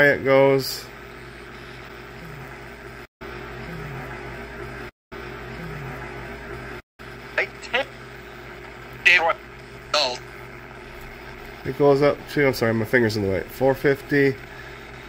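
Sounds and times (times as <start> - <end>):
radio static hiss: 7.2 - 14.5
clipped voice-like snippets: 7.4 - 8.0, 9.0 - 10.2.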